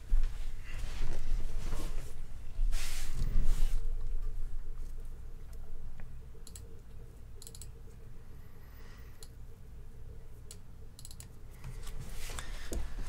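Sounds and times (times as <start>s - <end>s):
low steady hum: 0.0s - 13.0s
computer mouse clicks: 6.4s - 8.0s, 10.4s - 11.4s.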